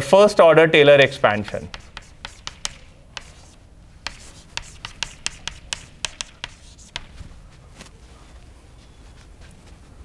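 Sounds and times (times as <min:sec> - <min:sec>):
chalk tapping on blackboard: 0:01.5 - 0:07.3.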